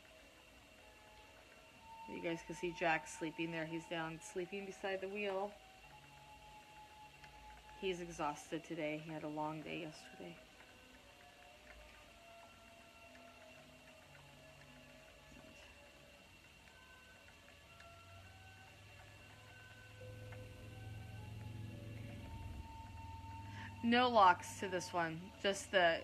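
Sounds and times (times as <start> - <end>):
faint background music: 0.0 - 26.0
spinning wheel whirring: 0.0 - 26.0.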